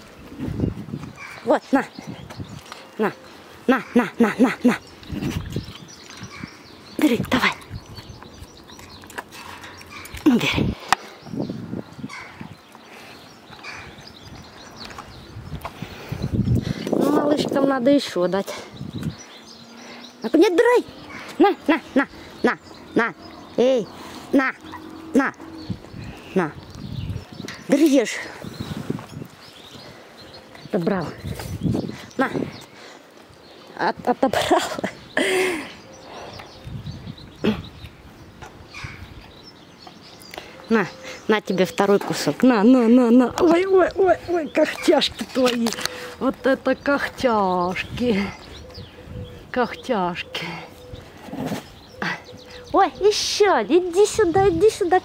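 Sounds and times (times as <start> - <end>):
woman speaking: 1.4 - 2.1, 3.0 - 4.9, 7.0 - 7.7, 17.0 - 18.7, 20.2 - 25.5, 26.2 - 26.6, 27.6 - 28.4, 30.6 - 31.3, 32.2 - 32.5, 33.8 - 34.9, 40.7 - 48.4, 49.5 - 50.7, 52.0 - 55.0.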